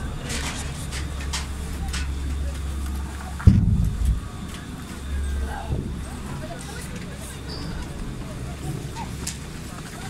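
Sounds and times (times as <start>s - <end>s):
chairlift machinery rumble: 0.0s - 10.0s
loud low thump: 3.4s - 4.3s.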